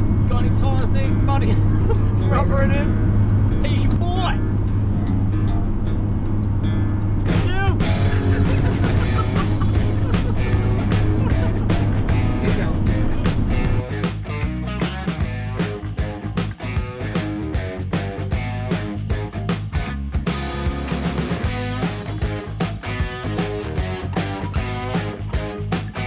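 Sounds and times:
van engine and road drone: 0:00.0 - 0:26.0
music with steady beat: 0:02.9 - 0:26.0.

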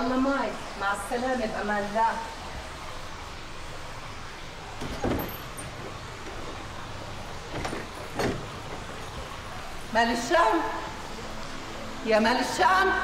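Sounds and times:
fountain water splashing: 0:00.0 - 0:04.8.

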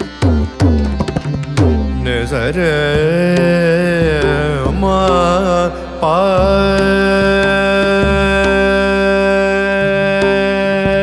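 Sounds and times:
instrumental accompaniment: 0:00.0 - 0:11.0
person singing classical song: 0:02.0 - 0:11.0.

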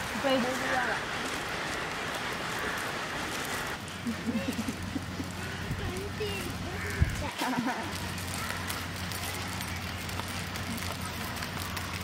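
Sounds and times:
woman speaking: 0:00.2 - 0:01.0.

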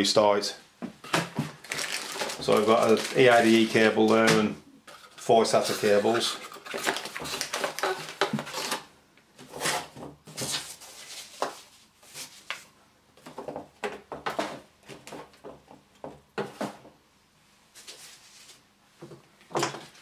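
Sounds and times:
packaging rustling and crinkling: 0:01.2 - 0:08.9, 0:09.5 - 0:12.7.

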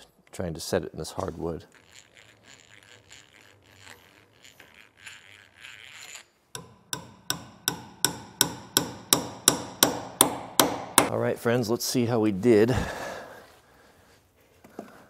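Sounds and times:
hammer tapping metal spike: 0:06.6 - 0:11.1.

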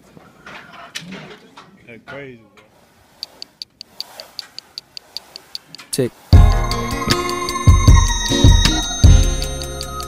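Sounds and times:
clock ticking: 0:03.2 - 0:09.7.

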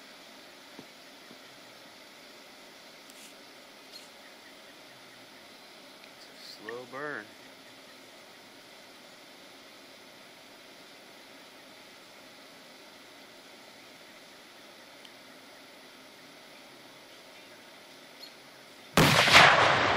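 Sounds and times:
faint outdoor hiss: 0:00.0 - 0:19.9
loud explosion: 0:19.0 - 0:19.9.

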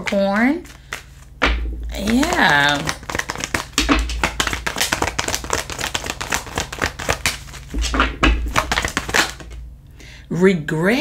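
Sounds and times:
cards being shuffled: 0:00.0 - 0:09.6.

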